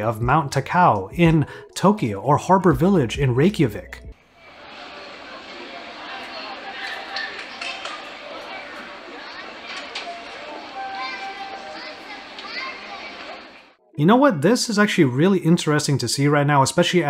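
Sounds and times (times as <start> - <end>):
crowd chatter: 4.2 - 13.8.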